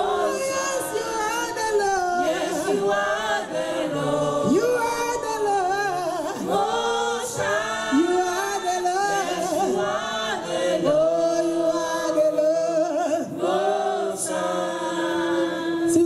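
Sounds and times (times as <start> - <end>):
gospel group singing unaccompanied: 0.0 - 16.0.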